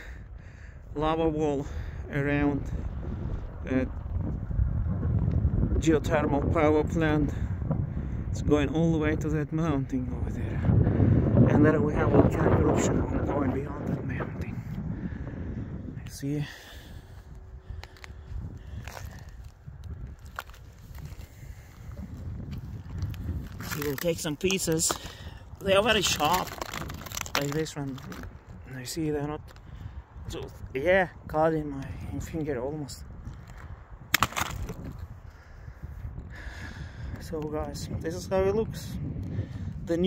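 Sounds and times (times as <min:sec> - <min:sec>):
wind rumbling on microphone: 0:00.0 - 0:40.0
footsteps on rough rock: 0:17.0 - 0:28.6, 0:33.2 - 0:35.1.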